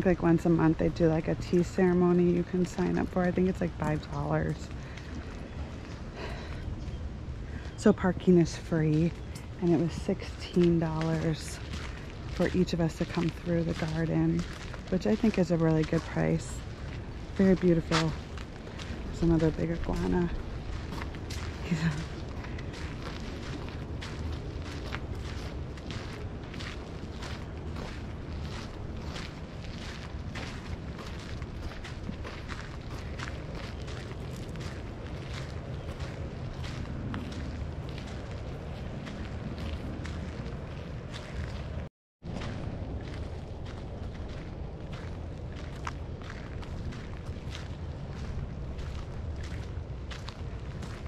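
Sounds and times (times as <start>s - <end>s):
footsteps on gravel: 0.0s - 51.0s
wind buffeting microphone: 0.0s - 51.0s.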